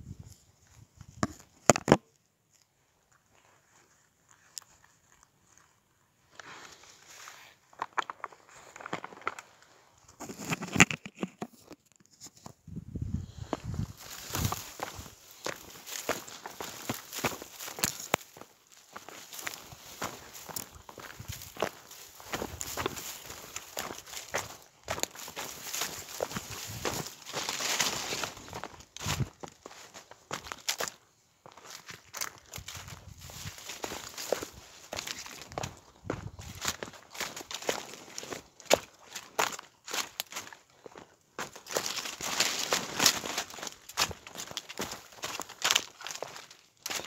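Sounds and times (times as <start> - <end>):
footsteps through dry grass: 3.0 - 10.7, 12.9 - 47.0
leaves and stems crackling: 13.9 - 29.3, 41.4 - 47.0.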